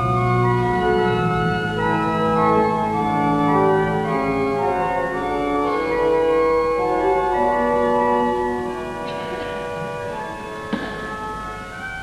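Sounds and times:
pipe organ playing sustained chords: 0.0s - 12.0s.

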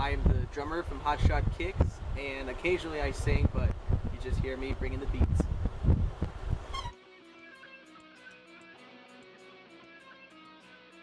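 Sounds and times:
studio sound: 6.6s - 10.8s
plucked guitar track: 6.7s - 11.0s.

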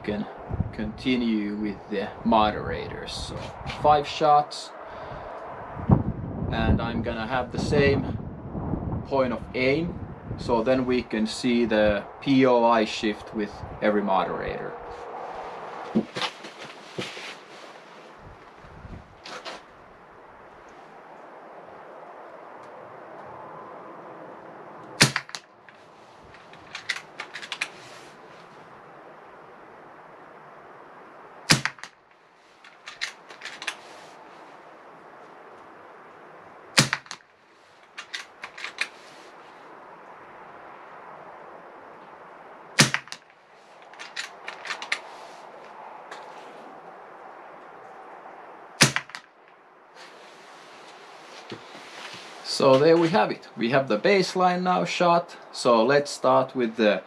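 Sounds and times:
air rifle shots cracking: 25.0s - 25.5s, 31.4s - 32.0s, 36.7s - 37.2s, 42.8s - 43.2s, 48.8s - 49.3s.

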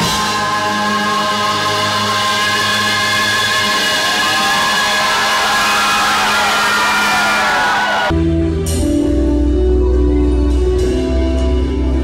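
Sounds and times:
rock band held chord: 0.0s - 8.9s.

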